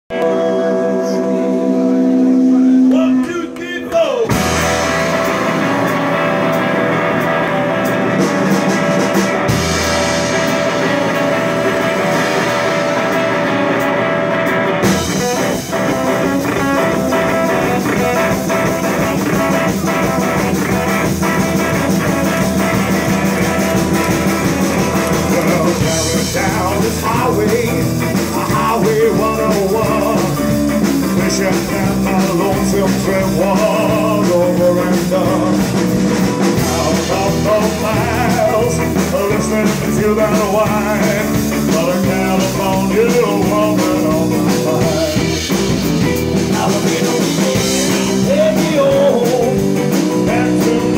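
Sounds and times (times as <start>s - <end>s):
rock and roll band playing: 0.0s - 50.9s
electric guitar chord ringing: 0.1s - 26.6s.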